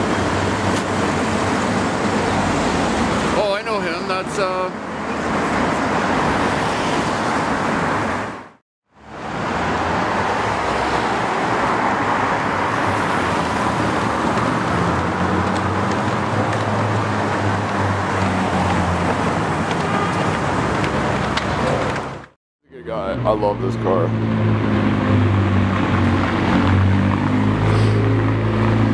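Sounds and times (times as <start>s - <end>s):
street traffic: 0.0s - 28.9s
car driving off: 9.0s - 22.3s, 23.0s - 28.9s
sports car engine rolling past: 23.2s - 28.9s.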